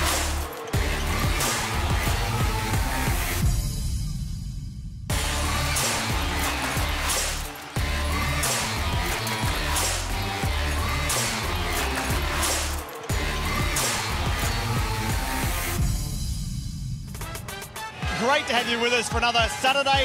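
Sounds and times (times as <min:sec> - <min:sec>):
theme music with heavy bass beat: 0:00.0 - 0:20.0.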